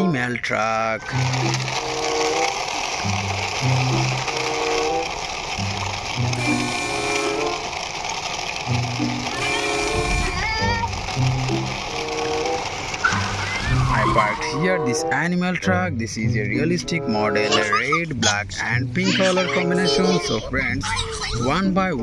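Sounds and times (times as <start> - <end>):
simple looping melody: 1.0 - 7.8, 8.6 - 20.4.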